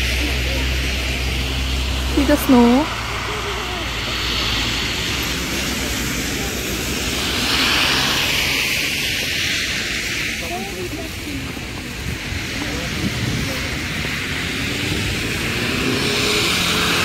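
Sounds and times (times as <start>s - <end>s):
faint voices: 0.0s - 17.0s
tyres hissing on slushy road: 0.0s - 17.0s
vehicle passing: 0.0s - 17.0s.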